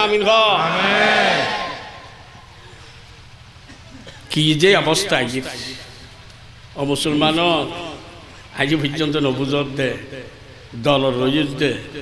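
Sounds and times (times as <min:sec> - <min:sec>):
preacher shouting over loudspeaker: 0:00.0 - 0:02.3.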